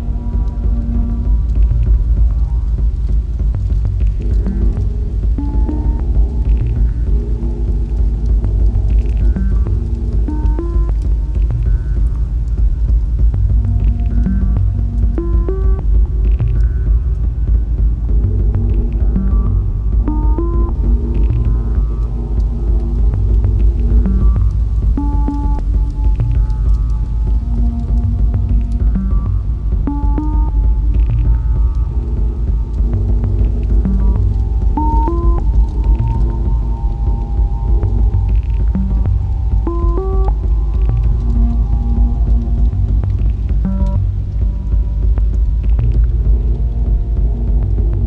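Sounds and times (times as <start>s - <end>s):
deep synthesizer bass drone: 0.0s - 48.0s
faint ticks: 0.1s - 48.0s.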